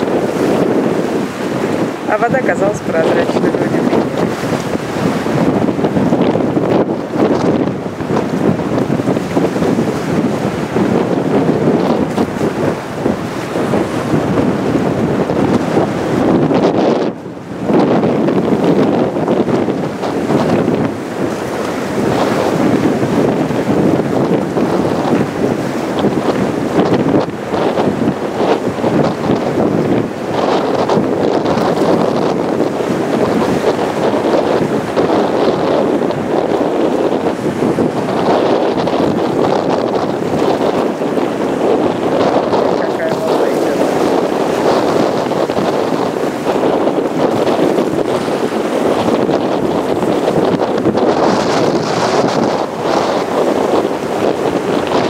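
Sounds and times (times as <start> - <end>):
choppy sea: 0.0 - 55.0
strong wind buffeting microphone: 0.0 - 55.0.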